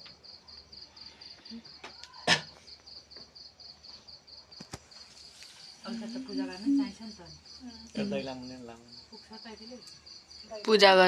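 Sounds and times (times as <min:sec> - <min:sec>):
cricket chirping: 0:00.0 - 0:11.0.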